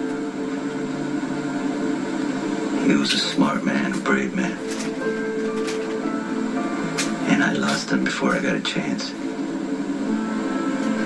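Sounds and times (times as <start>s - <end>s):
soft sustained chord music: 0.0s - 11.0s.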